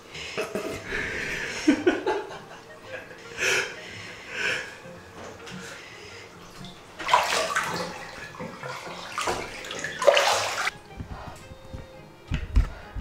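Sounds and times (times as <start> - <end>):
bathwater sloshing and splashing: 5.2 - 10.8.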